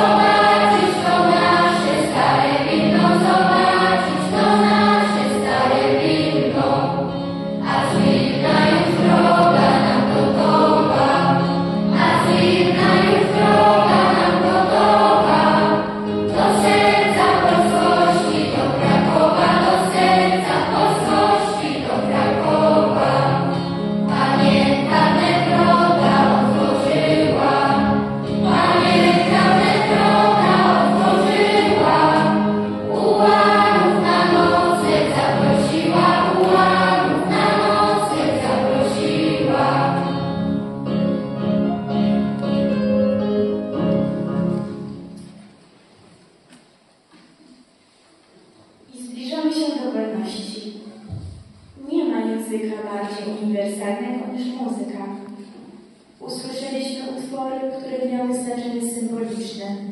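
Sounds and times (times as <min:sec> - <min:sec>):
youth choir singing: 0:00.0 - 0:40.6
electric keyboard low notes: 0:05.8 - 0:45.5.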